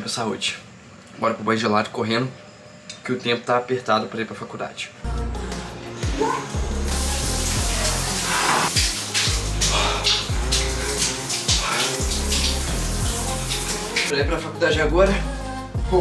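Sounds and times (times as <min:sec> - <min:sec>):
background music with deep bass: 0:05.0 - 0:16.0
shower spray running: 0:06.2 - 0:14.2.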